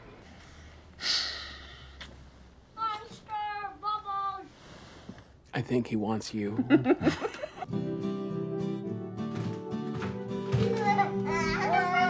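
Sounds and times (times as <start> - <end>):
child calling out sing-song: 2.8 - 4.5, 10.6 - 12.0.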